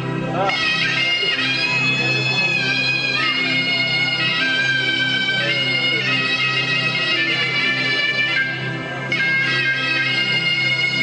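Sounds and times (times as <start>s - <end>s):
shawm playing slow melody: 0.0s - 11.0s.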